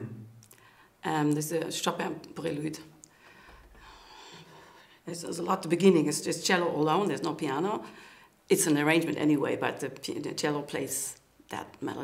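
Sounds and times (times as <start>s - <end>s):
faint breath: 0.6s - 1.0s, 3.1s - 5.0s, 7.8s - 8.4s.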